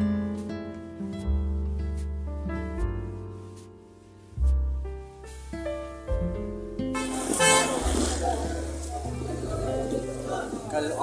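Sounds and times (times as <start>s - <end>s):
background music low notes: 0.0s - 11.0s
street noise: 7.0s - 11.0s
voices: 7.0s - 11.0s.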